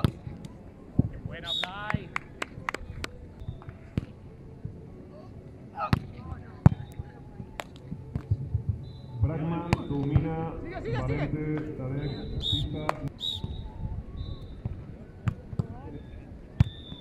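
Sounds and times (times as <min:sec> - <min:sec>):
hands slapping volleyball: 0:01.6 - 0:03.2, 0:12.8 - 0:13.1.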